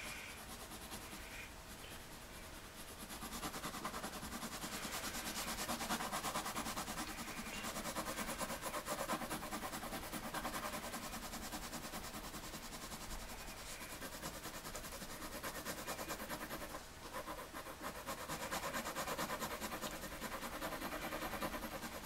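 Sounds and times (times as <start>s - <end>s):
pencil shading on paper: 0.0s - 1.3s, 2.8s - 22.0s.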